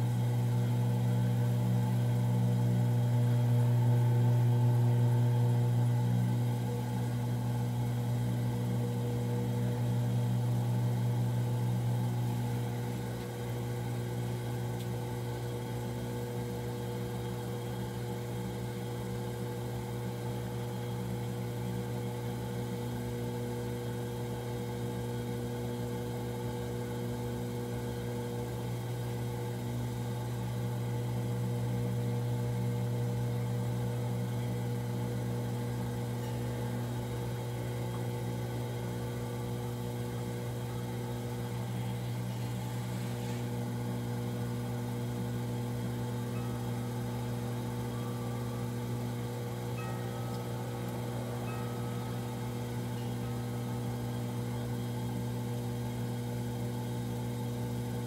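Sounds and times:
potter's wheel motor humming: 0:00.0 - 0:58.0.

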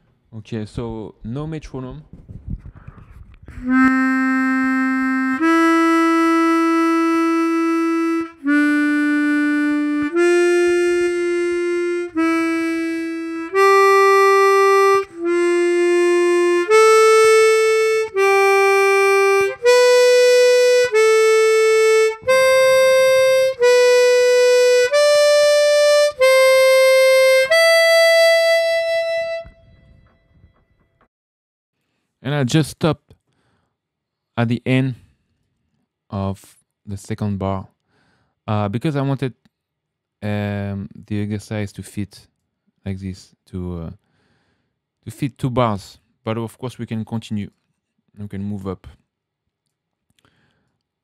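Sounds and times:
chromatic harmonica playing a scale: 0:03.5 - 0:29.7.

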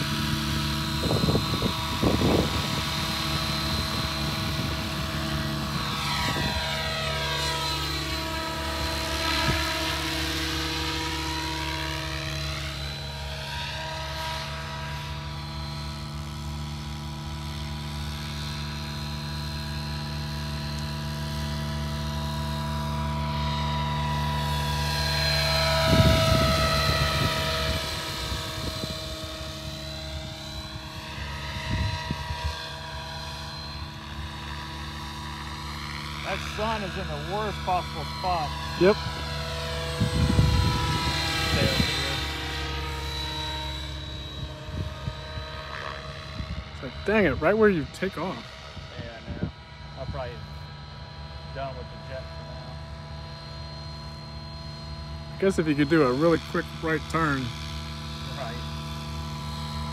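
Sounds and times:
electric motor whine: 0:00.0 - 0:59.9
helicopter rotor drone: 0:00.0 - 0:59.9.

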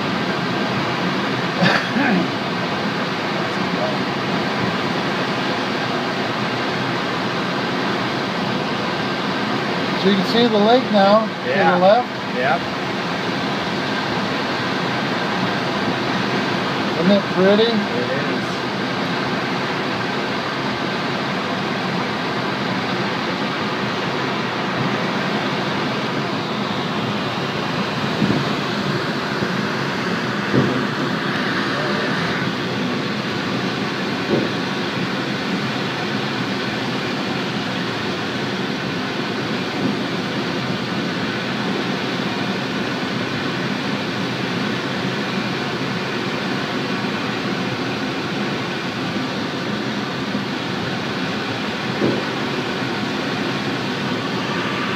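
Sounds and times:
aircraft cockpit air and engine noise: 0:00.0 - 0:54.9.

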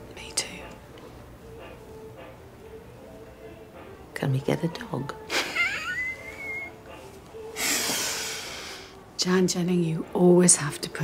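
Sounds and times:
woman laughing softly: 0:05.3 - 0:06.8.

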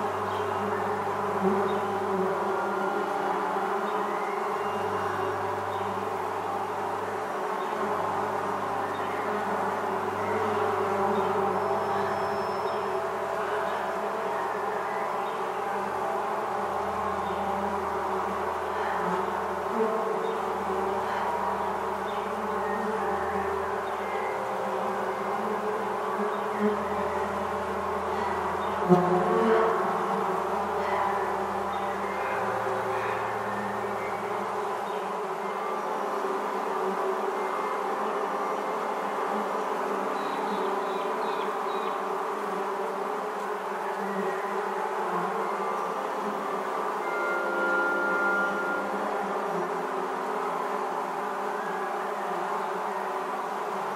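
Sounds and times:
low sustained bass notes: 0:00.0 - 0:36.7, 0:45.5 - 0:50.5
honeybee swarm humming: 0:00.0 - 0:53.9.

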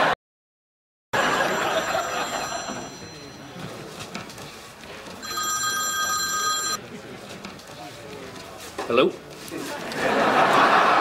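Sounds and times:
telephone ringing: 0:01.2 - 0:03.7, 0:05.2 - 0:06.8.

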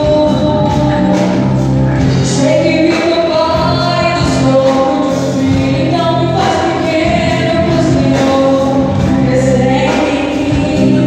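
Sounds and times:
gospel band over speakers: 0:00.0 - 0:11.0.

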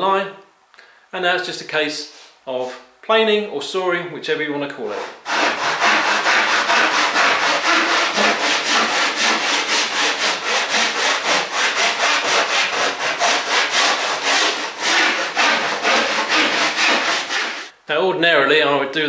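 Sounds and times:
saw blade rasping through wood: 0:04.9 - 0:17.7.

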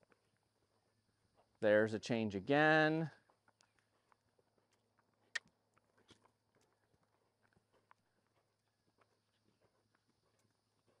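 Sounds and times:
horse hoofbeats on dirt: 0:00.0 - 0:02.1, 0:03.0 - 0:11.0.

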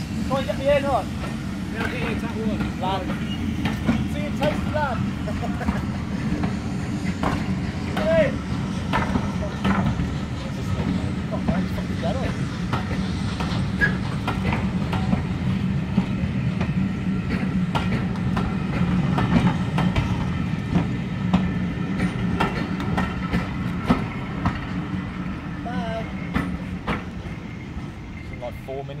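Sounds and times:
train rolling past rumbling: 0:00.0 - 0:29.0
wheels clicking over rail joints: 0:16.0 - 0:25.2.

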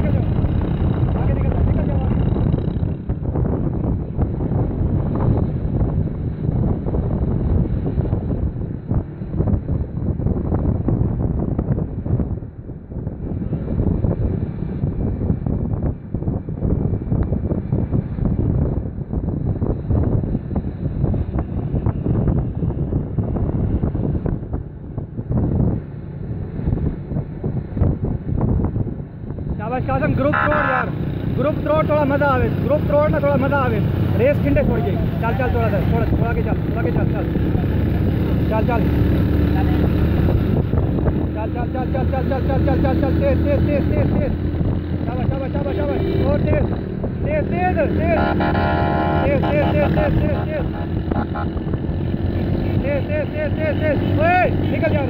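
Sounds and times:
vehicle engine running: 0:00.0 - 0:04.9, 0:30.2 - 0:55.0
wind buffeting microphone: 0:00.0 - 0:55.0.

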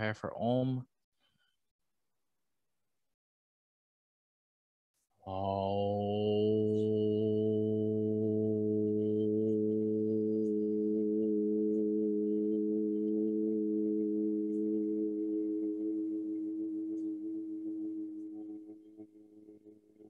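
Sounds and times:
men chanting om: 0:05.3 - 0:18.0.

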